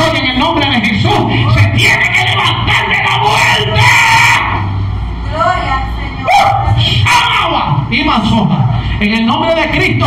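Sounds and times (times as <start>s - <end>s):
man shouting in prayer: 1.3s - 4.6s, 6.4s - 7.9s.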